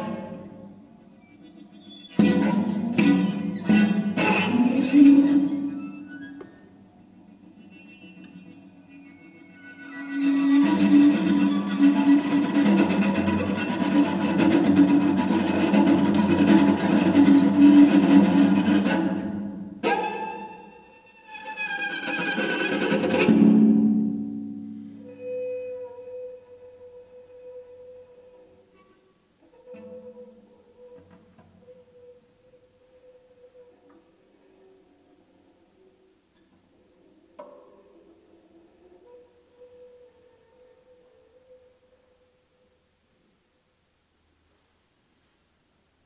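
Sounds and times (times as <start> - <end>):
bowed string tremolo: 7.6 - 24.6.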